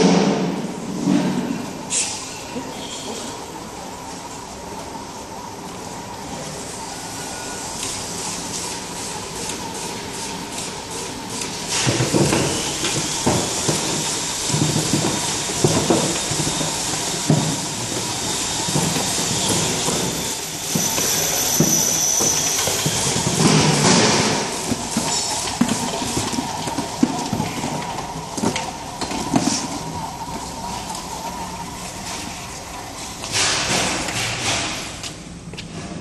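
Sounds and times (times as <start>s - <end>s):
thin steady whine: 0.0s - 34.2s
labeling machine hiss: 6.6s - 35.0s
vials clattering on conveyor: 11.3s - 34.9s.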